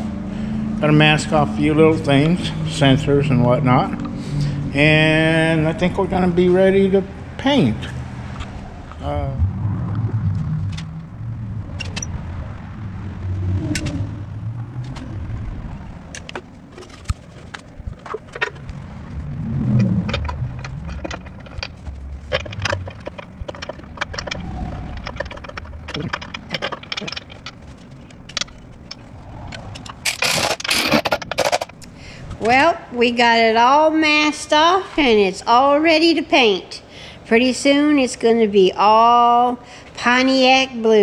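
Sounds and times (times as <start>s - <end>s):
low rumble: 0.0s - 33.7s
tools and parts clicking and scraping: 11.8s - 12.2s, 16.1s - 18.8s, 19.8s - 32.0s.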